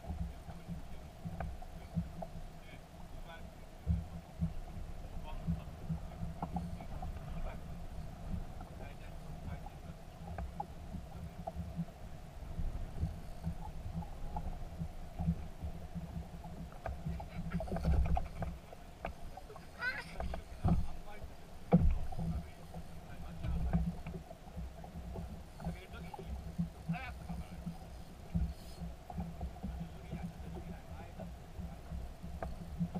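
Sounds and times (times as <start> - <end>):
wind and water against hull: 0.0 - 32.9
sharp knocks on boat: 20.1 - 32.9.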